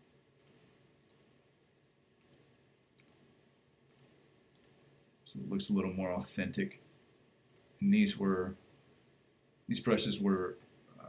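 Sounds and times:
faint computer mouse clicks: 0:00.4 - 0:01.2, 0:02.2 - 0:02.4, 0:03.0 - 0:03.2, 0:03.9 - 0:04.8, 0:07.5 - 0:07.7.

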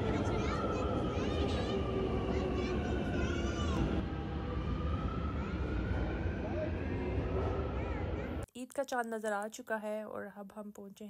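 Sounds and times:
metro train rumbling past: 0:00.0 - 0:08.4
train whine sliding in pitch: 0:00.0 - 0:08.4.

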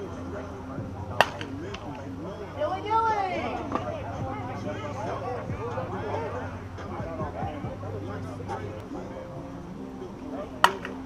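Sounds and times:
background chatter: 0:00.0 - 0:11.0
bat striking ball crack: 0:01.2 - 0:02.0, 0:10.6 - 0:11.0.

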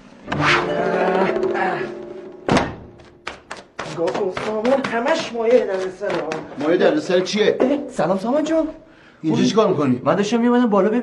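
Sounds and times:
heavy thunk: 0:02.4 - 0:03.1.

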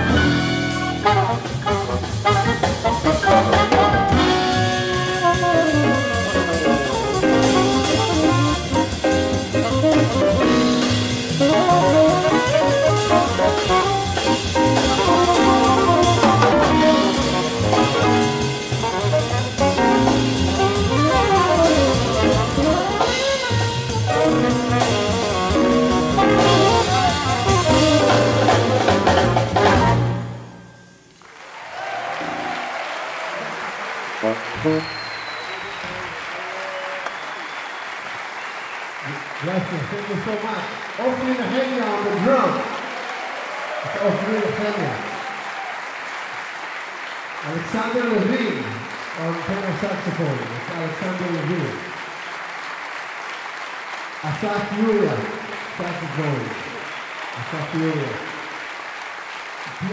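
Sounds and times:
jazz band playing: 0:00.0 - 0:30.8, 0:33.8 - 0:35.1
audience applause: 0:01.0 - 0:30.0, 0:31.2 - 0:59.9.

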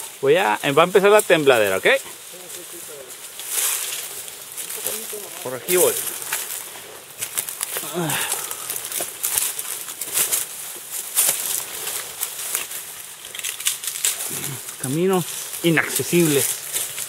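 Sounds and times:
branches and leaves rustling: 0:00.0 - 0:17.0.

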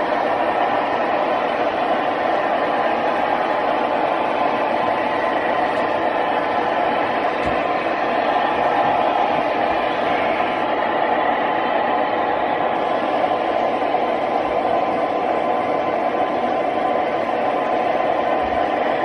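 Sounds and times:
model trains running: 0:00.0 - 0:19.0.

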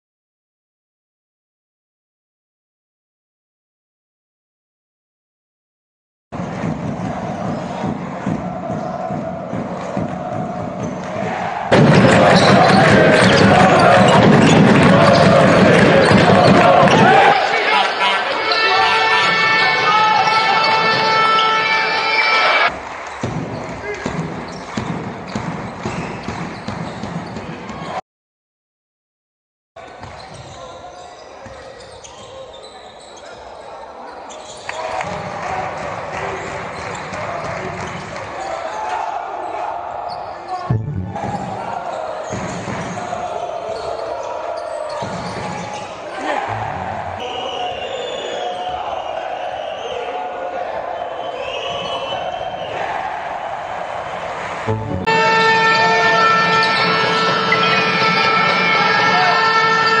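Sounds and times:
arena crowd noise: 0:06.4 - 0:28.0, 0:29.8 - 1:00.0
basketball bouncing on court: 0:11.8 - 0:17.0, 0:23.2 - 0:27.9
arena horn blaring: 0:54.7 - 1:00.0.

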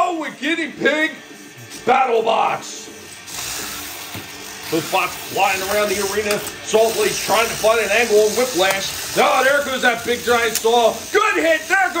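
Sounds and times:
toy robot motors whirring: 0:03.2 - 0:12.0.

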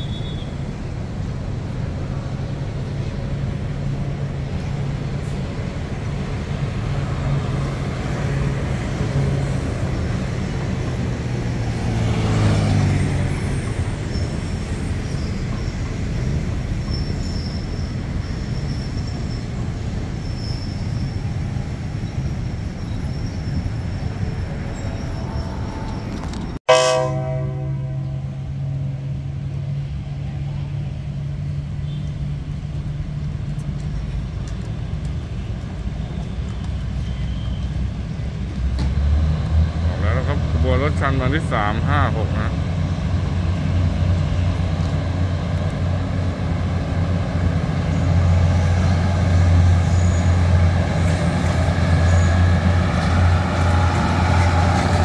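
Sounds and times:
diesel train rumbling: 0:00.0 - 0:55.0
train horn: 0:26.7 - 0:28.8
railcar engine idling: 0:40.0 - 0:55.0.

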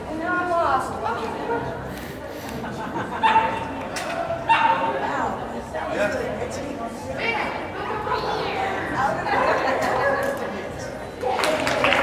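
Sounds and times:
chatter echoing in a hall: 0:00.0 - 0:12.0
dog barking: 0:03.2 - 0:03.6, 0:04.5 - 0:04.9.

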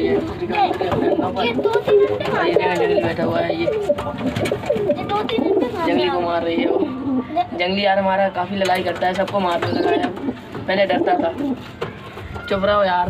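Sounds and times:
pigeons cooing: 0:00.0 - 0:12.9
other birds calling: 0:08.5 - 0:13.0.

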